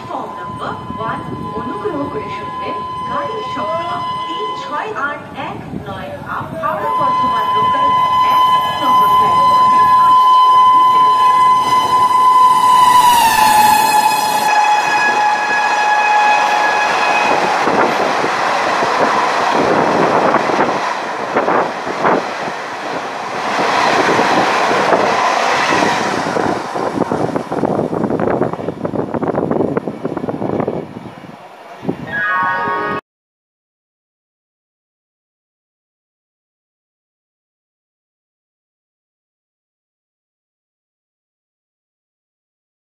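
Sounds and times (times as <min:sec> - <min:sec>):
locomotive horn: 0:00.0 - 0:05.0, 0:06.6 - 0:18.0, 0:32.1 - 0:33.0.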